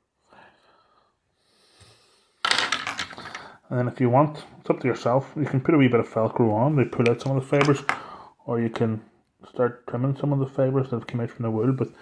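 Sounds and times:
small metal tools clattering: 2.5s - 3.6s.

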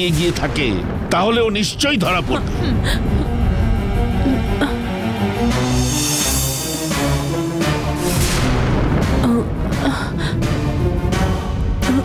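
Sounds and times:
dramatic heavy background score: 0.0s - 12.0s.

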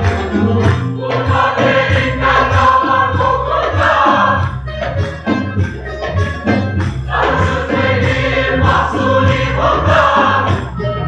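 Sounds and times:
choir singing with accompaniment: 0.0s - 5.6s, 6.4s - 11.0s.

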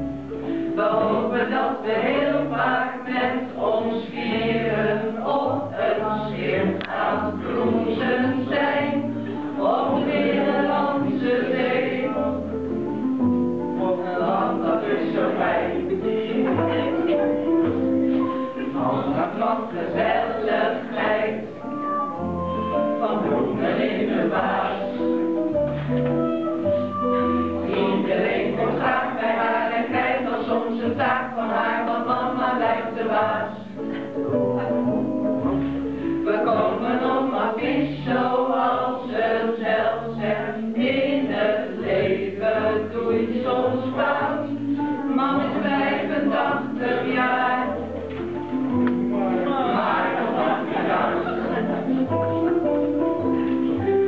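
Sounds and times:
group of people singing: 0.6s - 12.4s, 13.8s - 21.7s, 22.8s - 25.2s, 27.5s - 33.8s, 36.0s - 52.6s.

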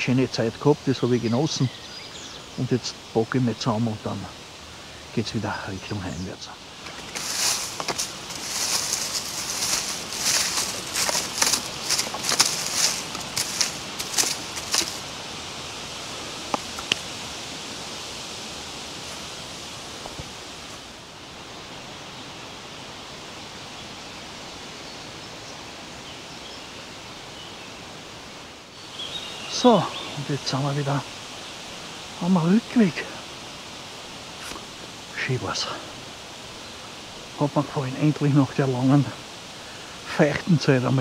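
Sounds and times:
steady outdoor hiss: 0.0s - 41.0s
footsteps crunching through dry leaves: 6.8s - 20.9s
faint clicks: 16.4s - 17.1s.

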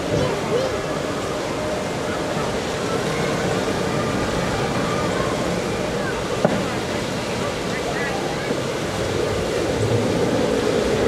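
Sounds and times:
continuous rushing rumble: 0.0s - 11.0s
faint distant voices: 0.0s - 11.0s.

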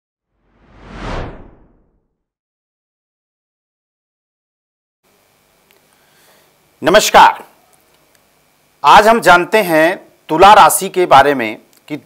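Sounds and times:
whoosh sound effect: 0.4s - 2.0s.

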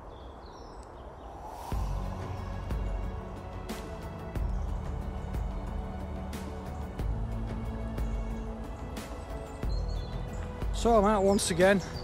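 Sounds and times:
high bird chirps: 3.9s - 12.0s.

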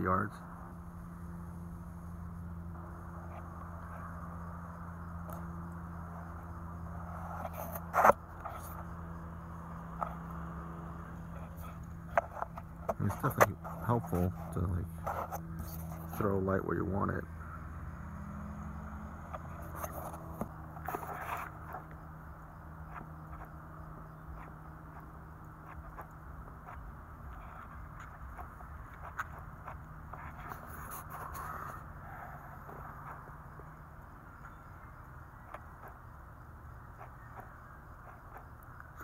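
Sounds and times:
faint low hum: 0.0s - 39.0s.

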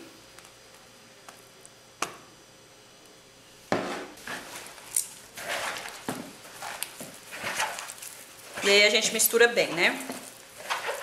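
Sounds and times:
hands squishing dough: 4.2s - 11.0s.

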